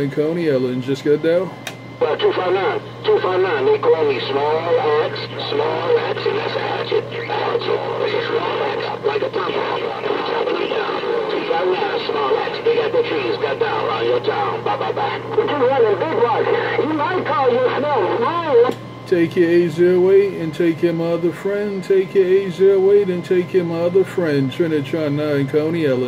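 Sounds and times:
steady hum: 0:00.0 - 0:26.0
garbled voices over radio speaker: 0:02.0 - 0:18.7.

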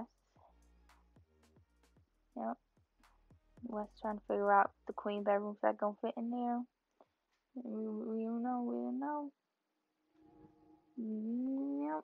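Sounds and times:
faint background music: 0:00.0 - 0:06.7, 0:10.2 - 0:12.0.

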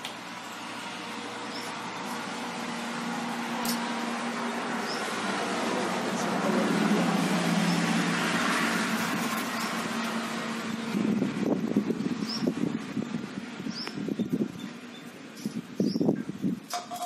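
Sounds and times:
steady rushing noise with hum: 0:00.0 - 0:16.7.

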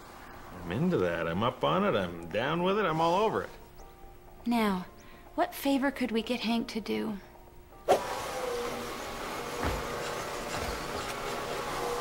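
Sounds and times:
floor buffer running: 0:08.0 - 0:12.0.

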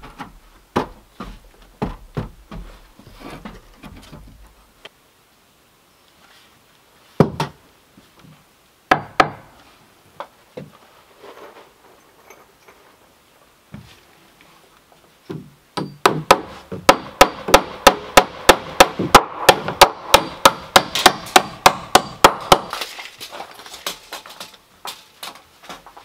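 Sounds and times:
hammer striking wooden post: 0:08.9 - 0:09.5, 0:15.3 - 0:22.8.

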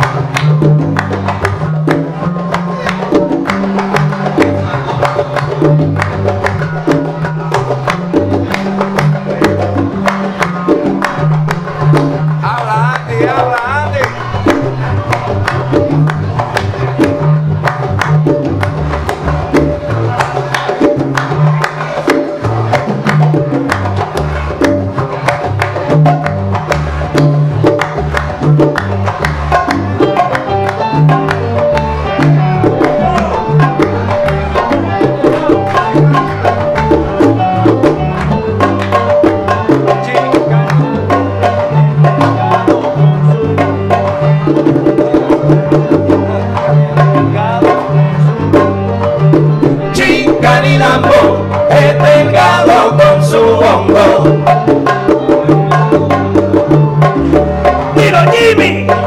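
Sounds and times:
bass line: 0:00.0 - 0:59.0
hand percussion rhythm: 0:00.0 - 0:59.0.

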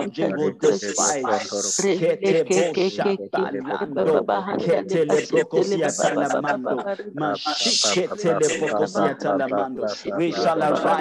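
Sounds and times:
person praying aloud: 0:00.0 - 0:11.0.

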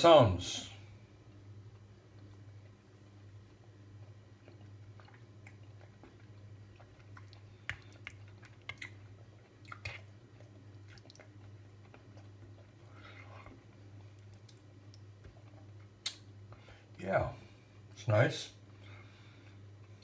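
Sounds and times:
steady low hum: 0:00.0 - 0:20.0
chewing: 0:03.4 - 0:16.6.

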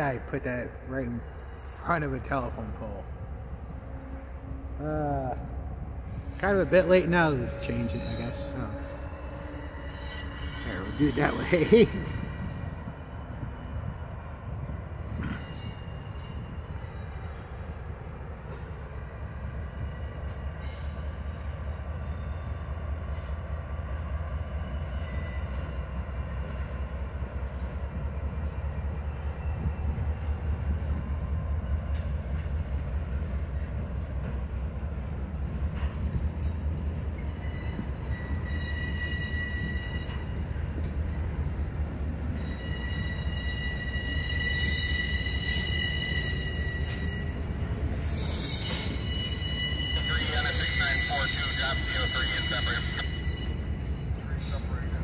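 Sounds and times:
diesel locomotive rumble: 0:00.0 - 0:55.0
train wheel squeal: 0:00.7 - 0:55.0.

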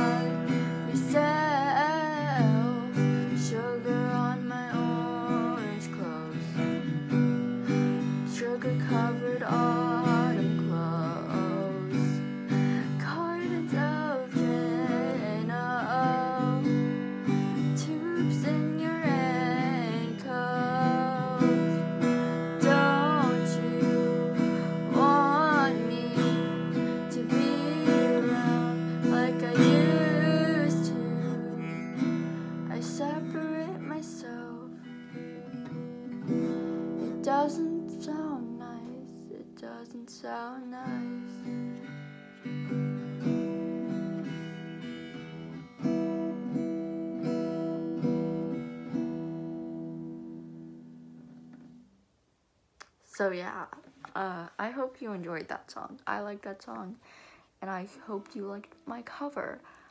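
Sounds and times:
acoustic guitar strumming chords: 0:00.0 - 0:51.8.

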